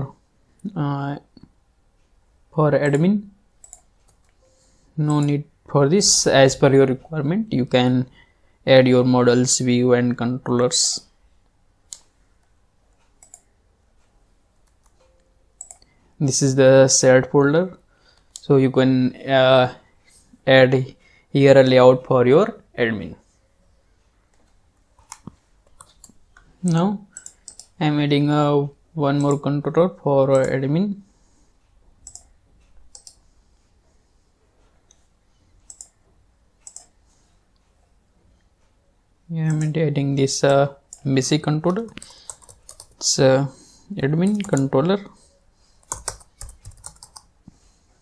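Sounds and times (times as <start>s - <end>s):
computer mouse clicks: 2.9s - 4.4s, 13.0s - 13.5s, 14.6s - 15.9s, 25.0s - 27.8s, 32.0s - 33.2s, 35.7s - 36.0s, 36.6s - 37.0s, 40.5s - 43.0s, 45.8s - 47.3s
faint mouse clicks: 11.9s - 15.9s, 24.3s - 27.8s, 32.0s - 33.2s, 36.6s - 36.9s.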